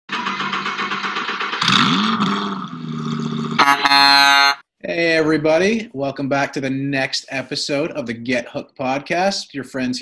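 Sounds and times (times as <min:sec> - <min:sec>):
vehicle engine revving: 0:00.1 - 0:03.9
loud vehicle horn blast: 0:03.6 - 0:04.6.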